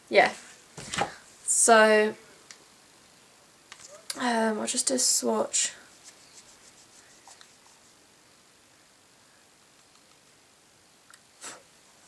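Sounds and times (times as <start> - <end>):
fingertip rubbing powder: 5.9 - 8.0.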